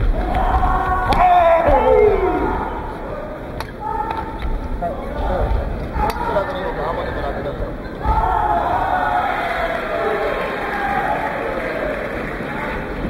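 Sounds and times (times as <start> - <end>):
crowd shouting in large hall: 0.0 - 13.0.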